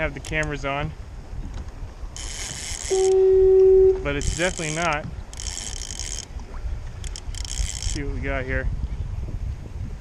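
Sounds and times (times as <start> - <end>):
choppy water: 0.0 - 10.0
wind buffeting microphone: 0.0 - 10.0.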